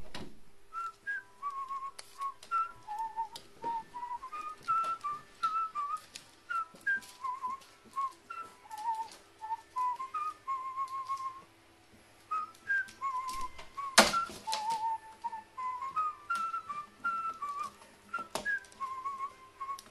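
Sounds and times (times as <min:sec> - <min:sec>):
whistled tune: 0:00.7 - 0:11.5, 0:12.3 - 0:19.9.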